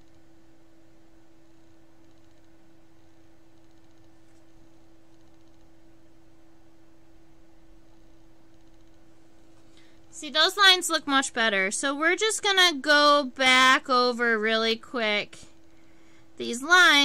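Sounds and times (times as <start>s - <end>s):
faint steady hum: 0.0s - 17.0s
low background hiss: 0.0s - 17.0s.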